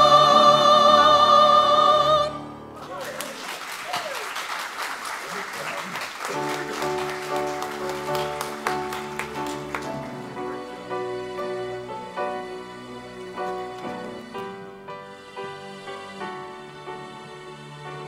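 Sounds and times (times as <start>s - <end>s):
congregation applauding: 2.8s - 10.6s
soft piano music: 6.3s - 18.0s.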